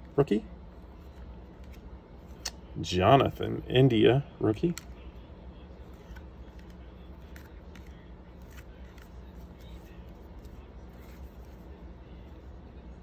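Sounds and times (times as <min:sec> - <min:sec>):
low steady hum: 0:00.0 - 0:13.0
cards clicking and rustling: 0:01.0 - 0:02.6, 0:05.8 - 0:11.8.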